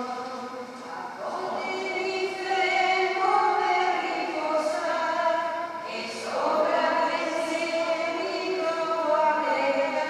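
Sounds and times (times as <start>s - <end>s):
group singing a hymn: 0.0s - 10.0s.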